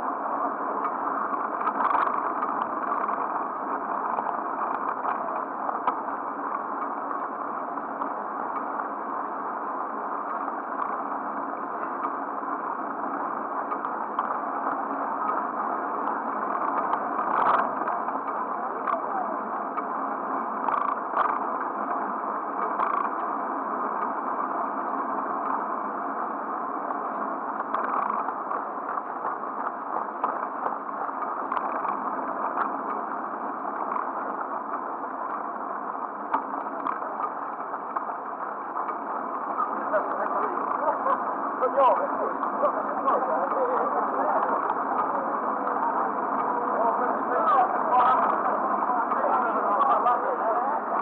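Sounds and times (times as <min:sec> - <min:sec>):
faint ticks: 0:13.6 - 0:15.4, 0:16.0 - 0:19.0, 0:26.9 - 0:33.1.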